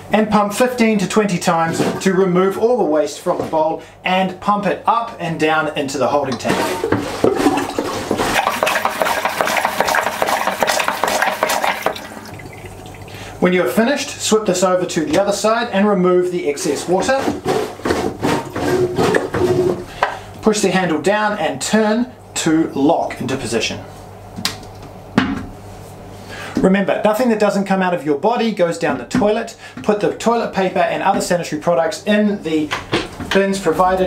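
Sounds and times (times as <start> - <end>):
hand pump toilet flushing: 6.3 - 13.3.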